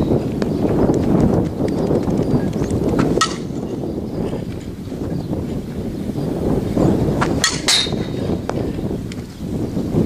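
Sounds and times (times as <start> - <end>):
bat striking softball: 7.2 - 8.2.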